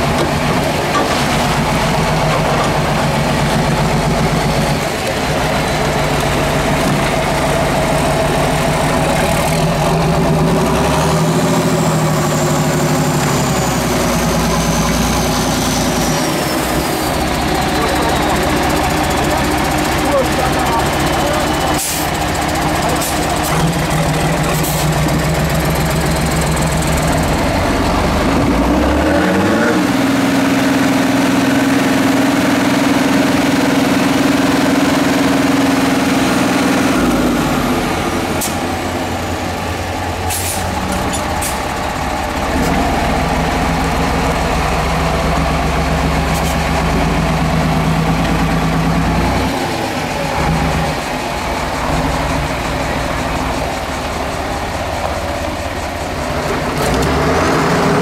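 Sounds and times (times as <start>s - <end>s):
diesel truck engine revving: 0.0s - 58.0s.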